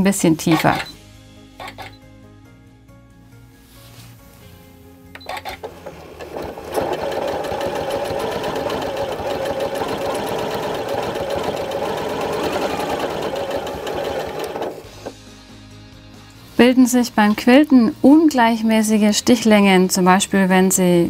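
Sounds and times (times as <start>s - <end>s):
sewing machine stitching: 5.2s - 15.1s.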